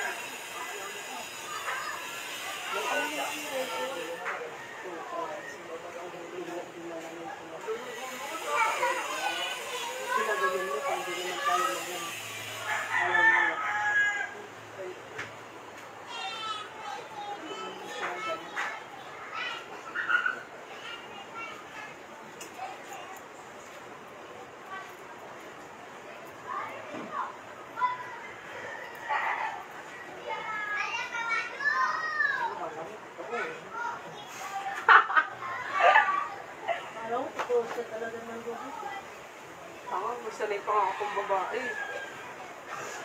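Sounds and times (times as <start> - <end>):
rooster crowing: 2.7 - 5.8, 11.0 - 14.6, 28.2 - 29.7, 40.6 - 42.5
child talking and calling out: 8.4 - 12.2, 16.0 - 22.0, 30.1 - 32.6.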